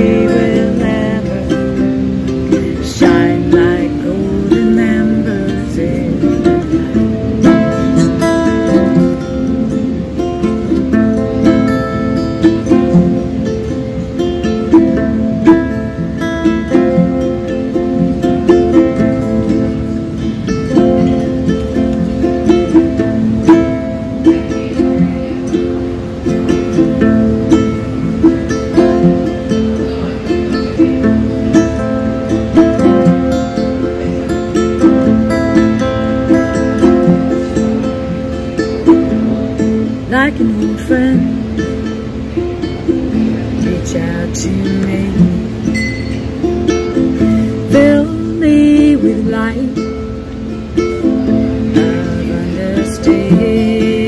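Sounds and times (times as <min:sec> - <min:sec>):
acoustic guitar: 0:00.0 - 0:54.0
ukulele: 0:00.0 - 0:54.0.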